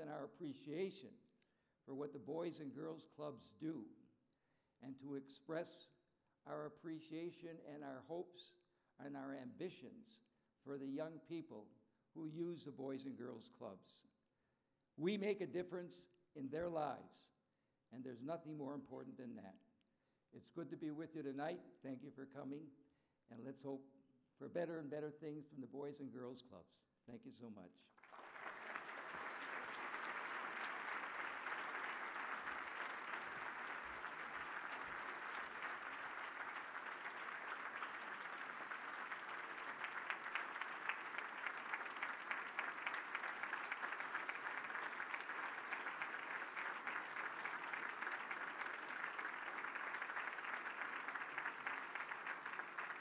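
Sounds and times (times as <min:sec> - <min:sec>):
audience applauding: 0:28.0 - 0:53.0.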